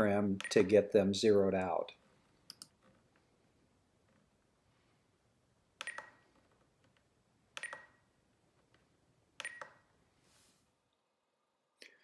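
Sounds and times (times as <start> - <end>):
scroll wheel double clicks: 5.8 - 6.2, 7.6 - 8.0, 9.4 - 9.8.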